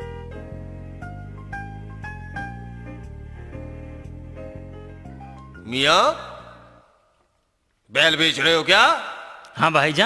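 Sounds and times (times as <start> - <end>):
background music: 0.0 - 10.0
man calling out: 5.7 - 6.6.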